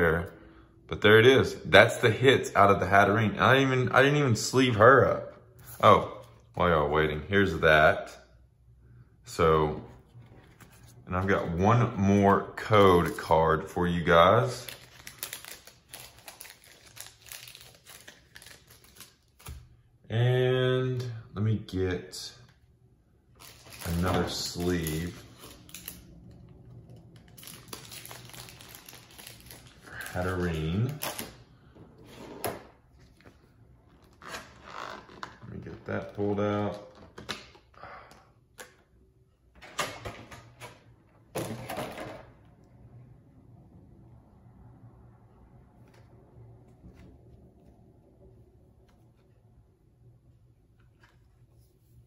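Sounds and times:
packaging crinkling: 14.4 - 19.5, 23.4 - 31.4
card sleeve rustling: 14.6 - 19.6, 23.4 - 26.0, 27.1 - 31.4.

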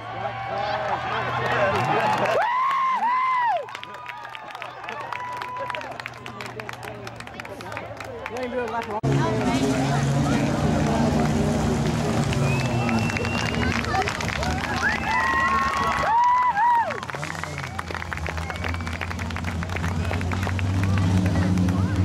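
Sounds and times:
race car engine: 0.0 - 2.6, 4.6 - 22.0
crowd noise: 0.0 - 22.0.

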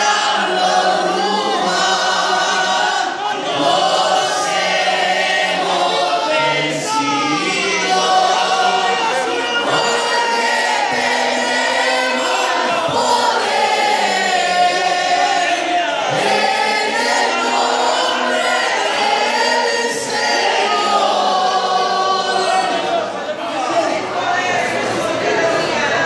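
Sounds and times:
boys singing together: 0.0 - 23.9
singer through microphone: 0.0 - 26.0.

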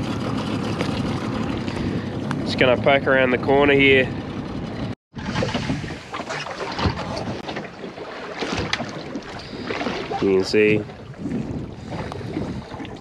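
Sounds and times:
water against boat hull: 0.0 - 13.0
wind on microphone: 5.2 - 7.4, 8.6 - 13.0.

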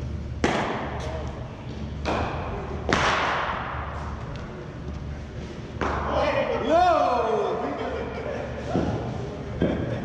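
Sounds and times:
cricket ball impacts echoing: 0.3 - 1.1, 2.0 - 4.1.

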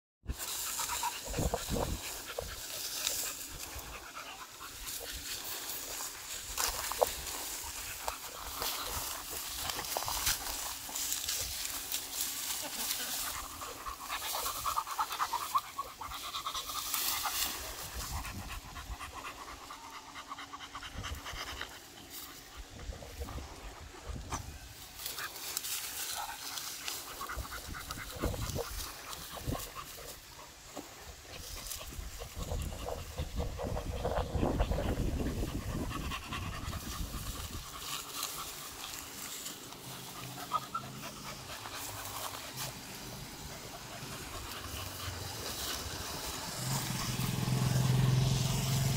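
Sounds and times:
grass rustling and crackling: 0.2 - 48.9
dog panting: 0.4 - 24.5, 25.1 - 48.3.

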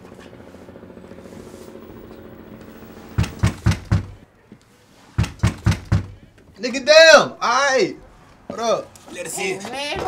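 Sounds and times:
knocks on a door: 3.2 - 4.2, 5.2 - 6.3.

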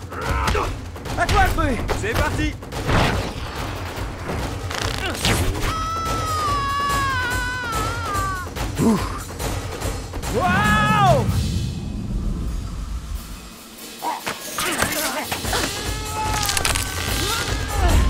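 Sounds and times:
orchestral score: 4.4 - 18.0
shouts: 5.7 - 8.5, 10.3 - 11.3.

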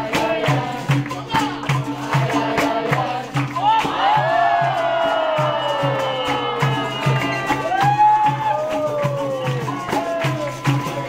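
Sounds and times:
atabaque drum beating: 0.0 - 11.0
band instruments playing: 1.1 - 11.0.

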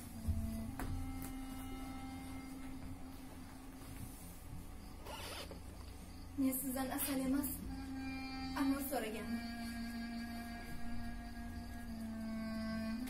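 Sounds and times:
costumes rustling: 0.0 - 13.0
steady low hum: 0.0 - 13.0.

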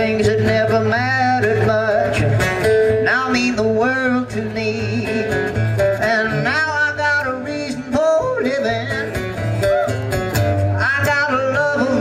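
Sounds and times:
acoustic guitar: 0.0 - 12.0
man singing: 0.0 - 12.0.

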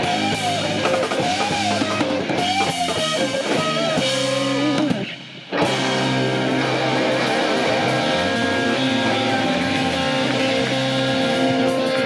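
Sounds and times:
live rock band: 0.0 - 12.0.

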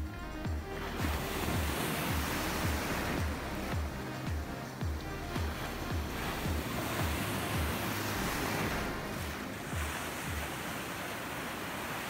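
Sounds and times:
background music with steady beat: 0.0 - 12.0
surf breaking: 0.4 - 12.0.

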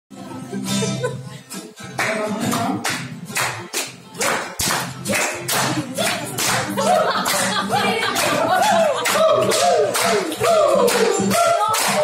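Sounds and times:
acoustic guitar music: 0.1 - 12.0
rhythmic clapping: 1.6 - 12.0.

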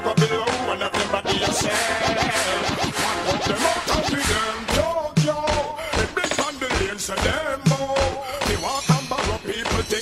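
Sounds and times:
dancehall music: 0.0 - 10.0
record scratching: 0.6 - 5.0.

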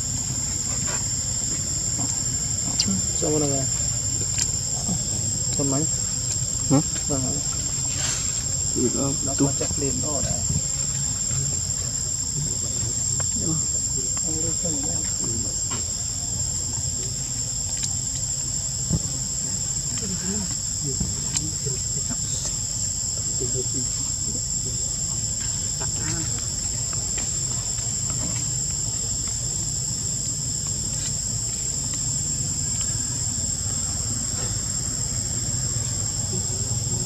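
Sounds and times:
high-pitched insect chorus: 0.0 - 37.0.

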